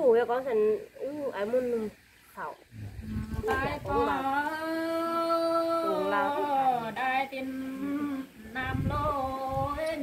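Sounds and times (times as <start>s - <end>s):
woman singing: 3.1s - 10.0s.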